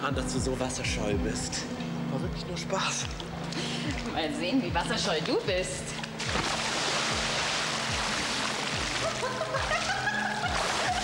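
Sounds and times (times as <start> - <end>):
background music with low beat: 0.0 - 11.0
pool water splashing: 6.0 - 11.0.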